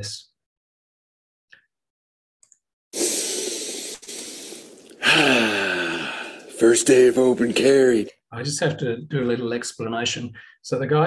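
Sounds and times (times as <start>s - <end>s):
loud breathy hiss: 3.0s - 8.0s.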